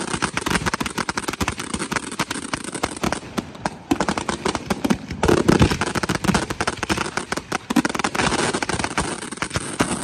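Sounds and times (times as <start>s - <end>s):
fireworks bangs: 0.0s - 10.0s.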